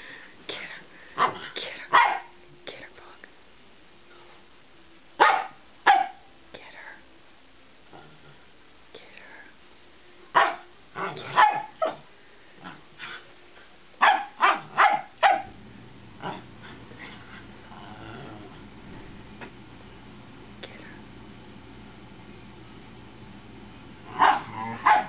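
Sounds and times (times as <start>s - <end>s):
dogs barking: 1.2s - 2.4s, 5.2s - 6.3s, 10.3s - 12.1s, 14.0s - 15.6s, 24.1s - 25.0s.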